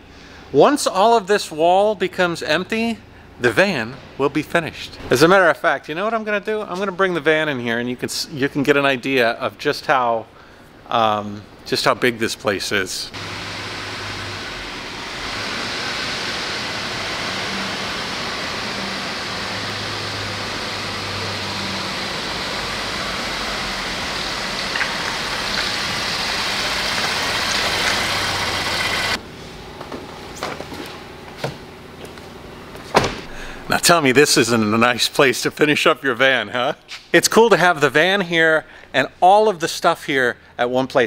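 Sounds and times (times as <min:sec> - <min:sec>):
loud rush of noise: 0:13.2 - 0:29.2
van engine running: 0:13.2 - 0:29.2.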